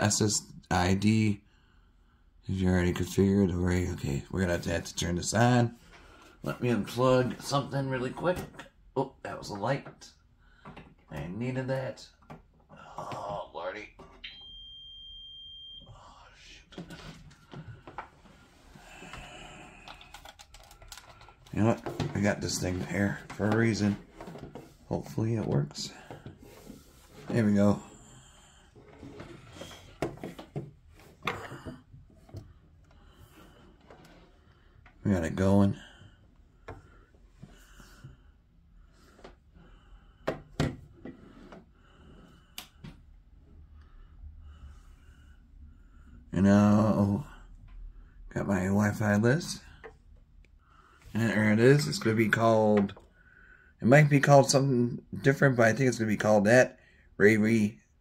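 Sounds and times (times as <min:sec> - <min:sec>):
long electronic beep: 0:14.2 - 0:16.1.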